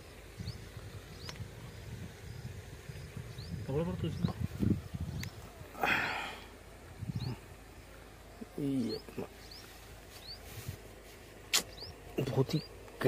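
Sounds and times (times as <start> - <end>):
bird chirping: 0.0 - 5.8, 7.0 - 10.7, 11.5 - 13.0
man humming low: 5.5 - 6.5
sharp click: 11.5 - 11.9.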